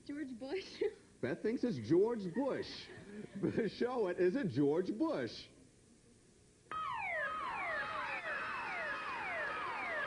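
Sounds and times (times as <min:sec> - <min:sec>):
noisy haze: 0:00.0 - 0:10.0
falling electronic tones: 0:06.7 - 0:10.0.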